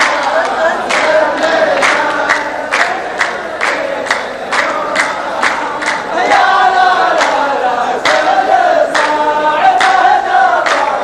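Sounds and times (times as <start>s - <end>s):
group handclap: 0.0s - 11.0s
men chanting in unison: 0.0s - 11.0s.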